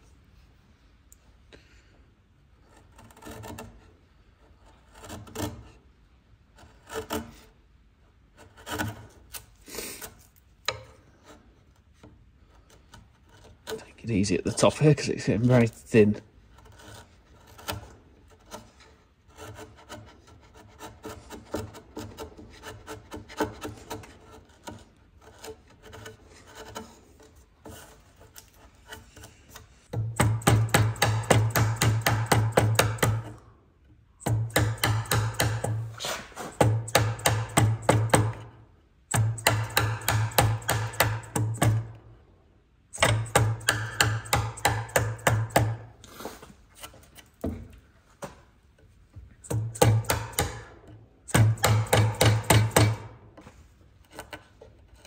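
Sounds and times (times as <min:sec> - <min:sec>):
chisel scraping wood: 0:02.4 - 0:55.0
quick even chisel strokes: 0:34.6 - 0:37.6.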